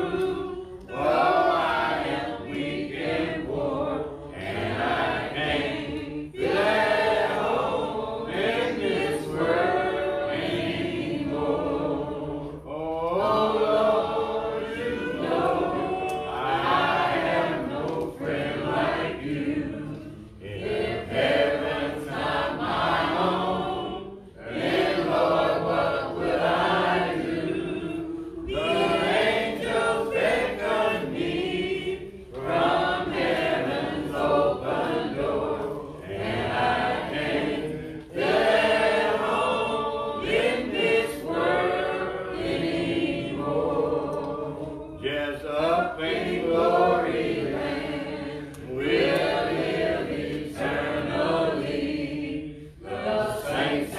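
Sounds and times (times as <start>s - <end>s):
congregation singing a hymn: 0.0s - 53.9s.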